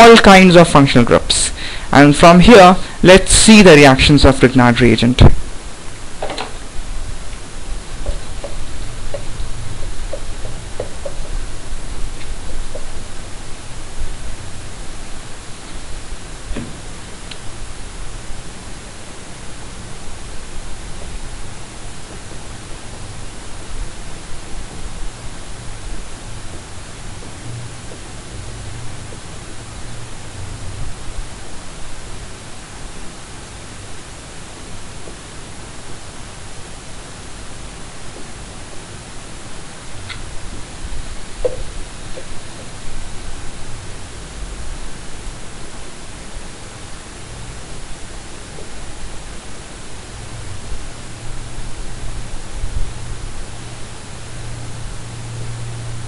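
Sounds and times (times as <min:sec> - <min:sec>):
background hiss: 0:00.0 - 0:56.0.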